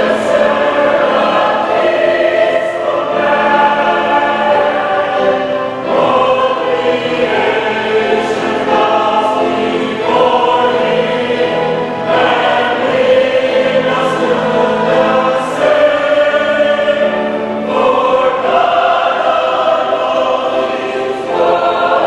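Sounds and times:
mixed choir singing: 0.0s - 22.0s.

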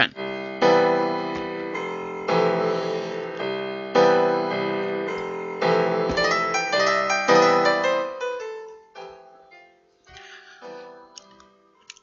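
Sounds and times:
slow piano chords: 0.0s - 12.0s.

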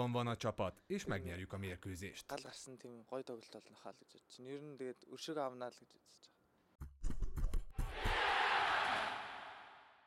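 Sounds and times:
stadium crowd cheering: 7.8s - 10.0s.

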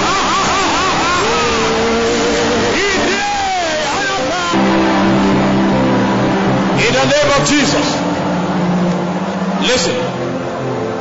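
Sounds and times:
loud background noise: 0.0s - 11.0s
man praying aloud: 2.7s - 4.6s.

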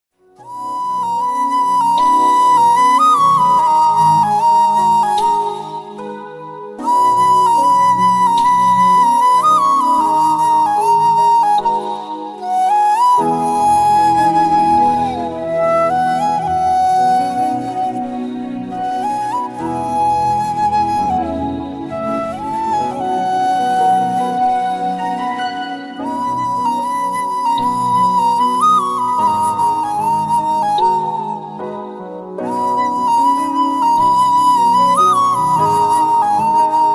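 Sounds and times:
slow flute melody: 0.2s - 36.9s.

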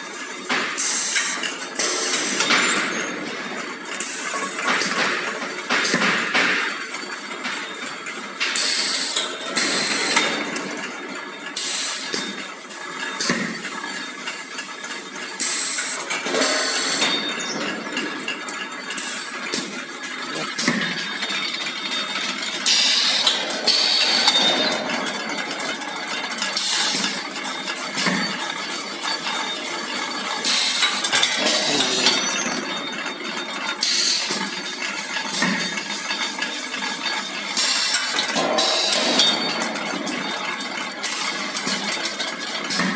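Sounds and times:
machine clattering: 0.0s - 42.9s
metal clinks and knocks: 0.3s - 42.9s.

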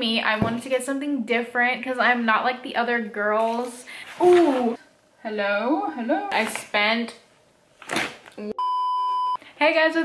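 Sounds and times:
electronic test-tone beep: 8.6s - 9.4s.

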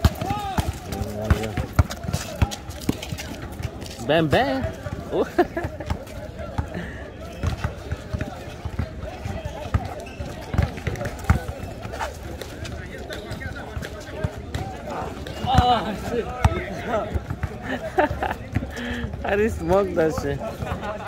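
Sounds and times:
basketball bouncing on asphalt: 0.0s - 4.0s, 7.3s - 17.6s
players talking: 0.0s - 21.0s
person laughing: 17.6s - 18.5s.

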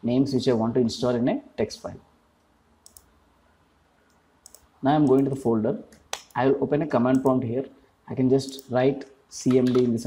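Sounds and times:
computer mouse clicks: 2.8s - 3.1s, 4.1s - 5.3s, 8.4s - 8.7s.

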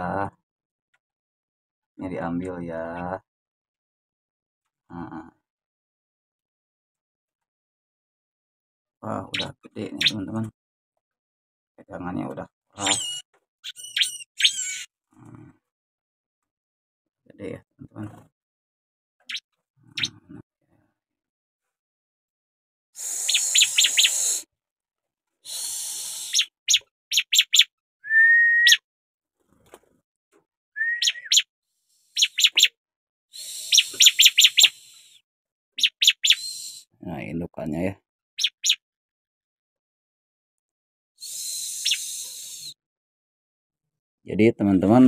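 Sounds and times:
bird chirping with buzzy notes: 12.8s - 14.9s, 23.0s - 24.4s, 25.6s - 27.7s, 30.8s - 32.8s, 33.4s - 35.2s, 35.8s - 36.9s, 38.4s - 38.8s
short whistled bird notes: 28.0s - 28.8s, 30.8s - 31.5s, 41.2s - 42.8s.

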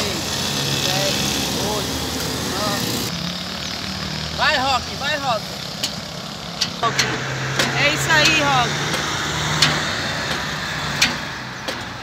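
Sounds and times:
road noise: 0.0s - 12.0s
vehicle engine humming: 0.0s - 12.0s
sharp clicks: 6.6s - 12.0s.

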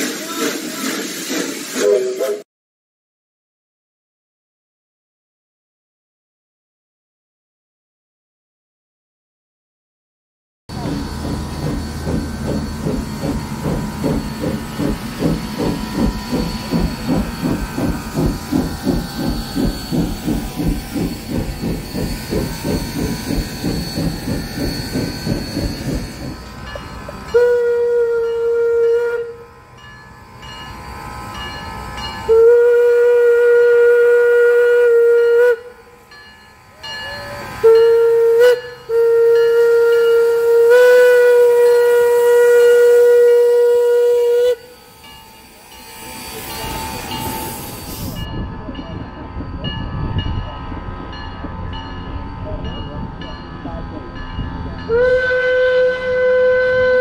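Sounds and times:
train cars rolling by: 0.0s - 2.4s, 10.7s - 34.2s, 35.4s - 57.0s
steam locomotive whistle: 1.8s - 2.5s, 15.6s - 30.6s, 31.3s - 48.2s, 54.8s - 57.0s.

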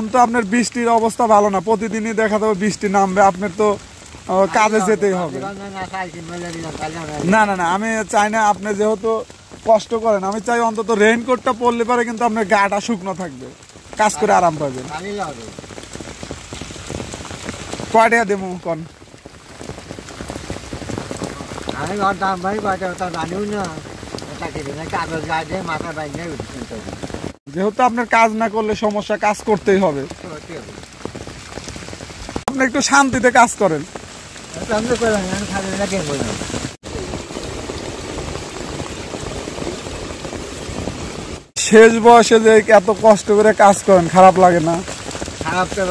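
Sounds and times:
person speaking: 0.0s - 15.6s, 27.5s - 30.8s, 32.5s - 33.9s, 34.5s - 36.4s, 41.6s - 45.9s
steady rain falling: 0.0s - 45.9s.

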